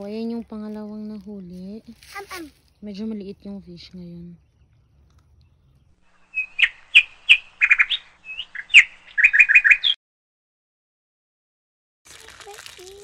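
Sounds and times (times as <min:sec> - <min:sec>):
songbird singing: 0:00.0 - 0:10.0.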